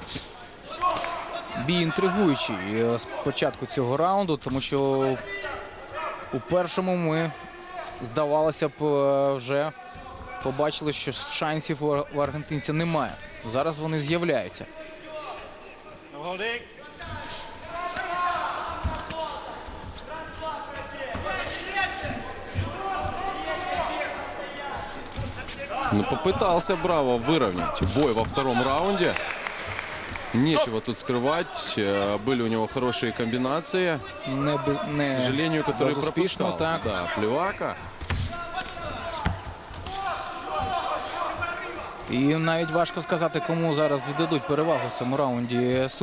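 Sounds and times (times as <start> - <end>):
crowd voices: 0.0 - 46.0
feet on canvas: 18.7 - 24.0.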